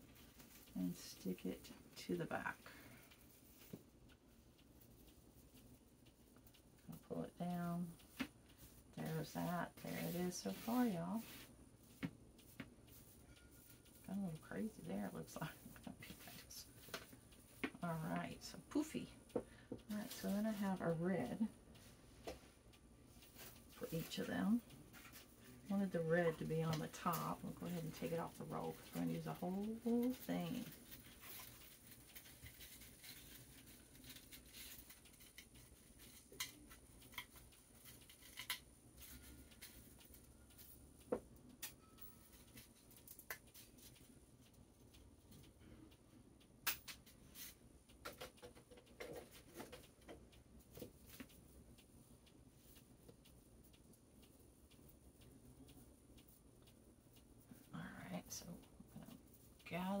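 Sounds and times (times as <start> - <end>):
plastic mesh rustling and clicking: 28.6 - 40.8.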